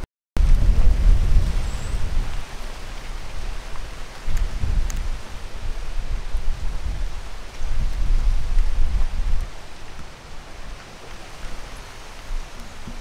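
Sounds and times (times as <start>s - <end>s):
wind rumbling on microphone: 0.4s - 13.0s
outdoor hiss: 0.6s - 13.0s.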